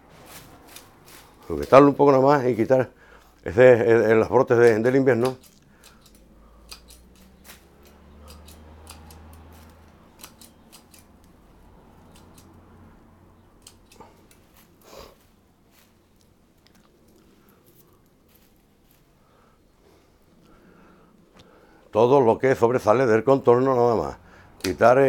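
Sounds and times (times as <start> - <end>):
pruning shears snipping twigs: 0.2 - 2.7, 4.1 - 12.6, 13.4 - 19.0, 24.6 - 25.0.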